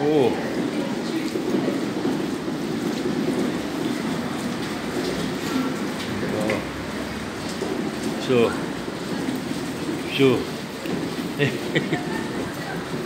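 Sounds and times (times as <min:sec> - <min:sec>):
echoing traffic rumble: 0:02.3 - 0:13.0.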